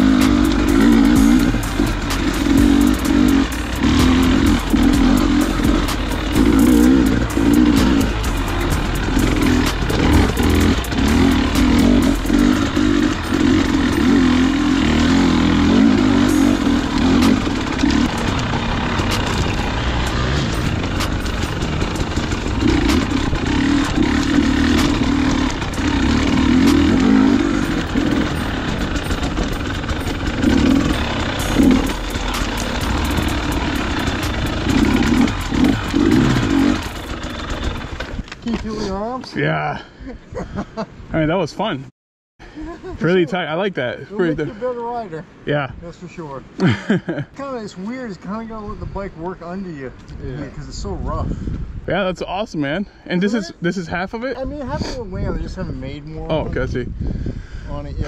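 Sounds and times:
bike knocks and rattles: 0.0 - 38.7
dirt bike engine revving: 0.0 - 39.0.

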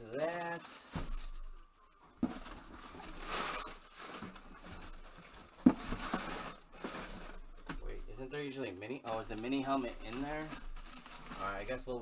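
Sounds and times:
fabric bag and packaging rustling: 0.0 - 8.3, 9.0 - 12.0.

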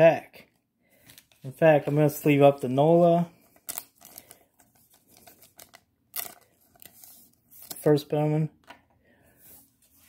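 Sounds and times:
plastic sleeve crinkling and clicking: 3.4 - 7.9.

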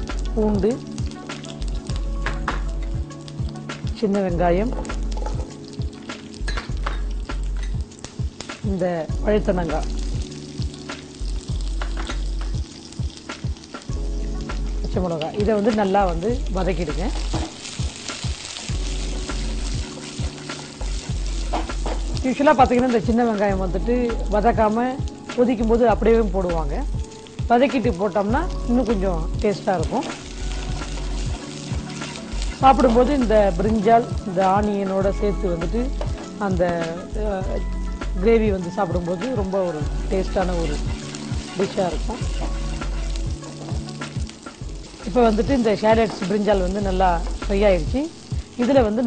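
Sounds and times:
food sizzling in a wok: 0.0 - 49.0
wooden spatula stirring: 17.2 - 22.4, 40.3 - 47.8.

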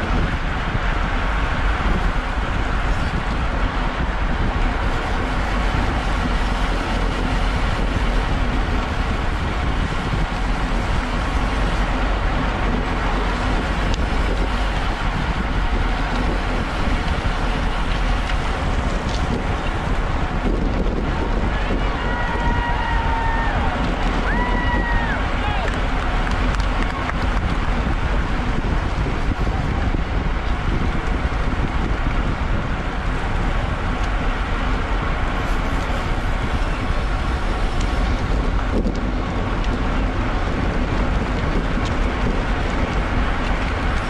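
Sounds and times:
bicycle tyres on asphalt: 0.0 - 44.0
wind rushing over microphone: 0.0 - 44.0.

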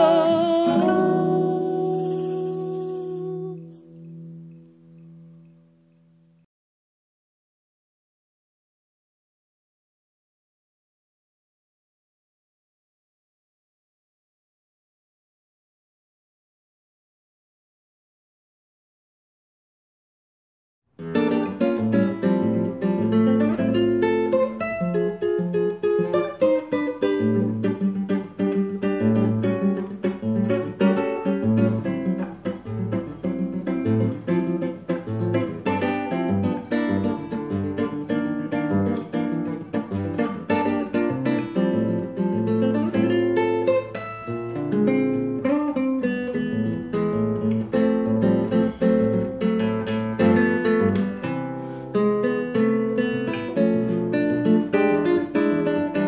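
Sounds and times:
classical guitar fingerstyle: 0.0 - 6.5, 21.0 - 56.0.

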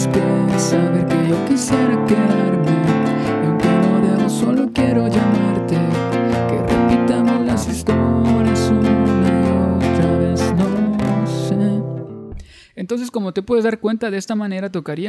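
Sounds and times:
classical guitar strumming: 0.0 - 12.5.

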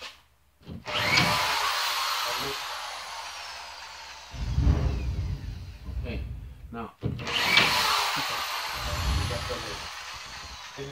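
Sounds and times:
power drill driving screw: 0.8 - 6.0, 7.1 - 10.9.

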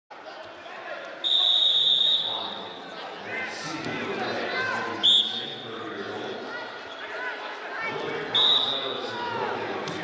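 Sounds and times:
voices in arena hall: 0.1 - 10.0
referee whistle blast: 1.2 - 2.5.

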